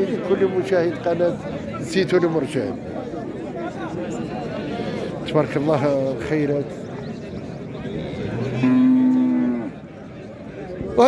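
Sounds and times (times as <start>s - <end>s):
low market background: 0.0s - 11.0s.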